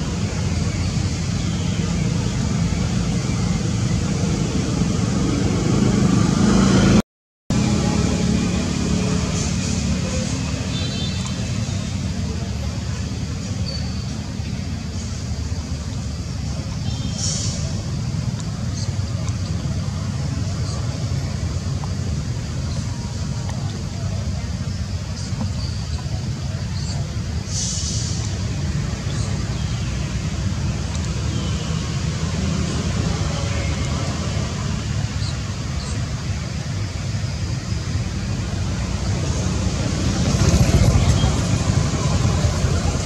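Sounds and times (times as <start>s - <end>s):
low outdoor rumble: 0.0s - 43.0s.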